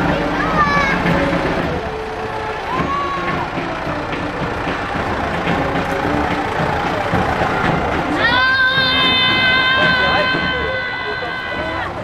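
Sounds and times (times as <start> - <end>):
crowd noise: 0.0 - 12.0
tractor engine running: 0.0 - 12.0
brief high call: 8.2 - 12.0.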